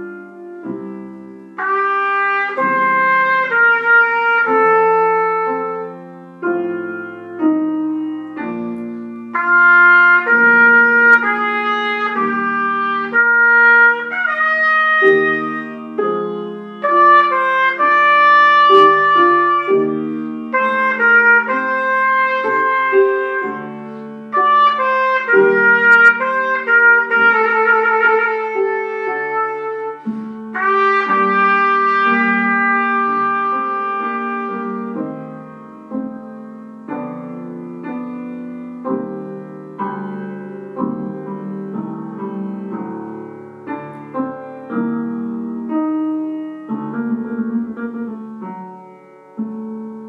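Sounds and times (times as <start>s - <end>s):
grand piano accompaniment: 0.0s - 50.0s
trumpet playing slow melody: 0.0s - 50.0s
trumpeter breathing: 8.8s - 34.6s.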